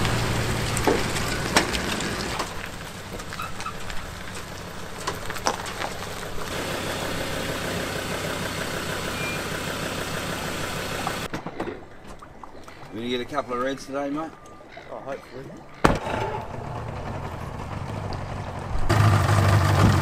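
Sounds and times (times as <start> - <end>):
truck engine running: 0.0 - 11.3, 15.9 - 20.0
trailer clicks and knocks: 0.0 - 14.5, 15.7 - 20.0.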